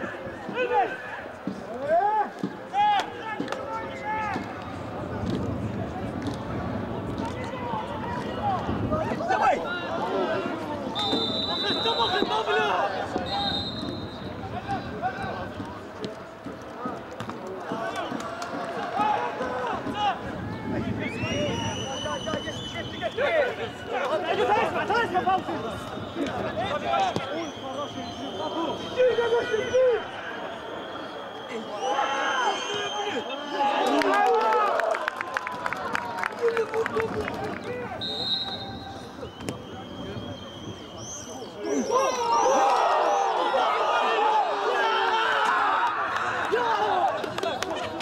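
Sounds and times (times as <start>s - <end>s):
players shouting: 5.9s - 16.2s, 16.8s - 35.7s, 36.4s - 48.0s
referee's whistle blasts: 10.9s - 12.6s, 13.2s - 14.4s, 25.4s - 33.6s, 38.0s - 41.5s.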